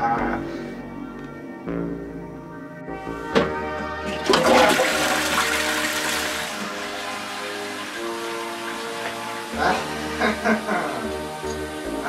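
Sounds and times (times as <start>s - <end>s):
toilet flushing: 3.8s - 12.0s.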